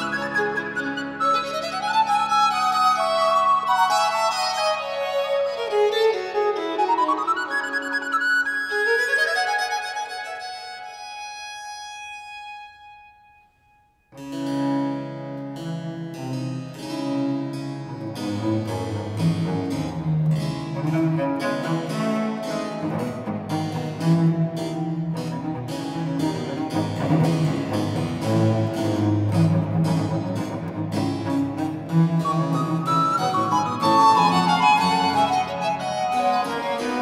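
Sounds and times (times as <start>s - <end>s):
upper string instruments: 0.0s - 37.0s
held chord from chamber ensemble: 14.2s - 37.0s
bowed cello bass line: 14.6s - 37.0s.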